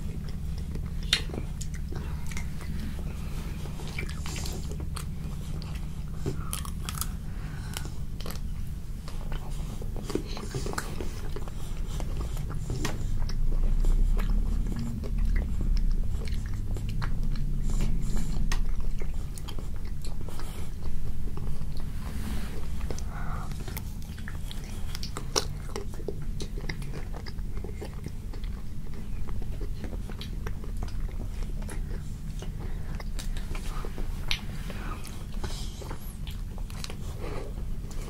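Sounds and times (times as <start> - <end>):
chewing crunchy ice cream bar: 0.0 - 38.0
low rumble: 0.0 - 38.0.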